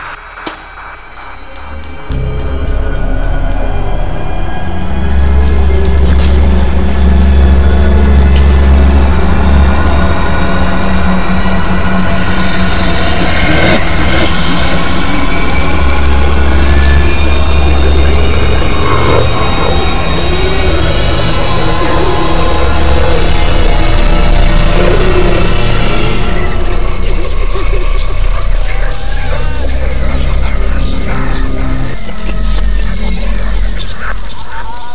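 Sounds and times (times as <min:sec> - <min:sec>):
film soundtrack music: 0:00.0 - 0:34.9.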